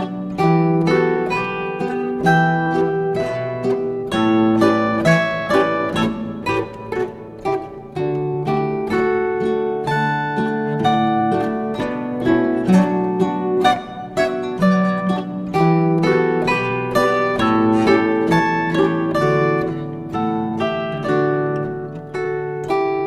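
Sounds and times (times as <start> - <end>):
plucked string instrumental music: 0.0 - 23.0.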